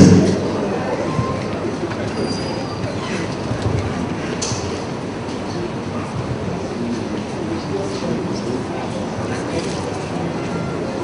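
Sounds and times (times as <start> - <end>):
large hall background noise: 0.0 - 11.0.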